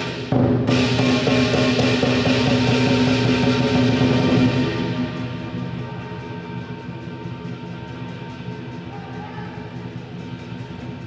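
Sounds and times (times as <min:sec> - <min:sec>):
cymbals clashing: 0:00.0 - 0:11.0
drum beating: 0:00.0 - 0:11.0.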